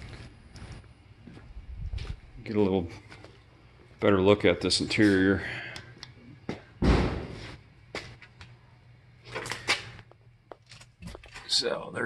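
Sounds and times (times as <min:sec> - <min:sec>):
dull thump: 0:06.8 - 0:07.4.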